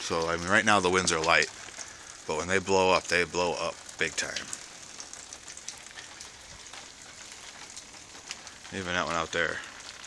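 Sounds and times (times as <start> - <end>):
rain pattering: 0.0 - 10.0.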